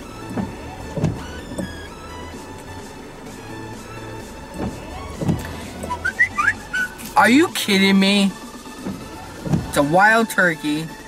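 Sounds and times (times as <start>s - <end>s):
whistle-like chirps: 5.9s - 7.0s.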